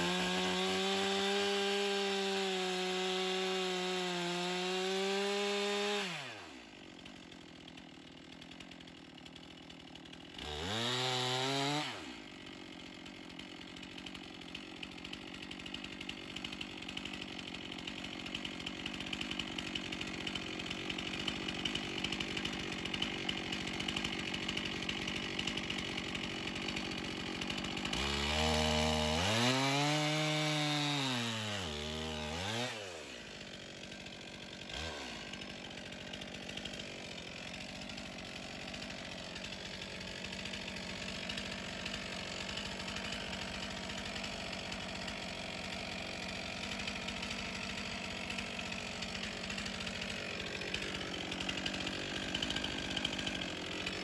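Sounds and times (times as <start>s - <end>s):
chainsaw cutting log: 0.0s - 54.0s.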